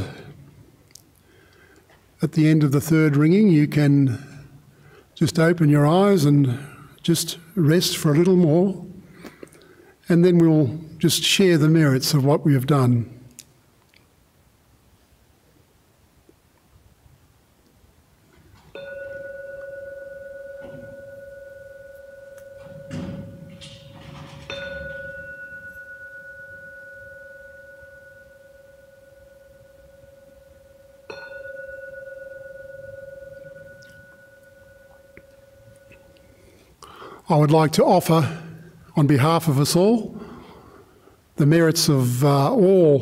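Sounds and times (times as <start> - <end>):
temple bell ringing: 18.7 - 37.0.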